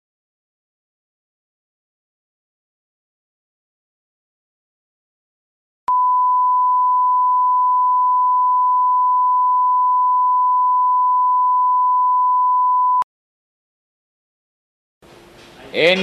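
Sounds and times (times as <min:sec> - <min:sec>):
steady single-pitch reference tone: 0:05.9 - 0:13.0.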